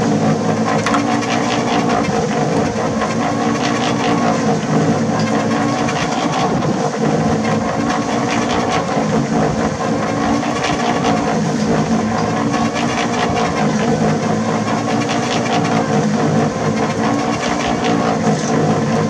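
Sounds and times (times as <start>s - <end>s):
machine motor humming: 0.0s - 19.0s.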